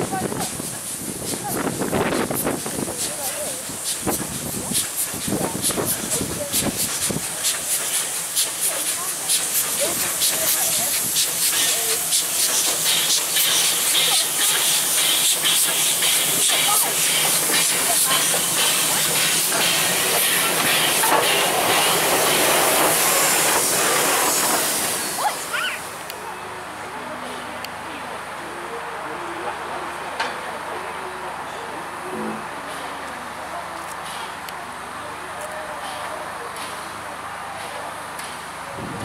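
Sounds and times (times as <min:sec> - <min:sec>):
steam hissing loudly: 0:00.0 - 0:26.1
steam locomotive passing slowly: 0:00.0 - 0:39.0.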